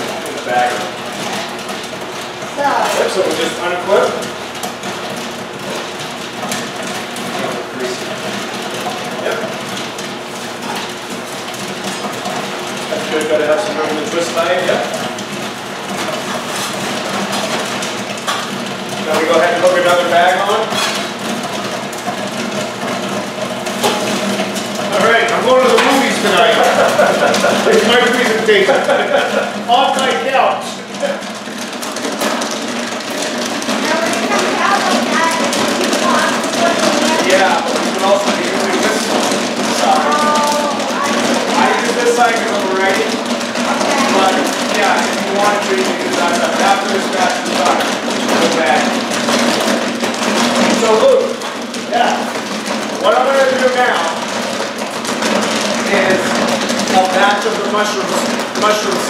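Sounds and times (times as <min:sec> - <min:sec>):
machine hum: 0:00.0 - 0:59.0
people talking: 0:00.2 - 0:00.9, 0:02.6 - 0:04.2, 0:09.2 - 0:09.5, 0:12.9 - 0:15.0, 0:24.9 - 0:31.2, 0:33.8 - 0:49.0, 0:50.7 - 0:52.3, 0:53.0 - 0:54.2, 0:55.8 - 0:59.0
popcorn poured into plastic bags: 0:06.5 - 0:59.0.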